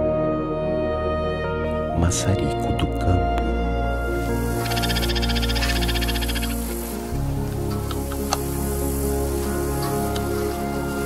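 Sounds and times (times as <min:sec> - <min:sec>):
background music low notes: 0:00.0 - 0:11.0
bird high trill: 0:04.3 - 0:06.9.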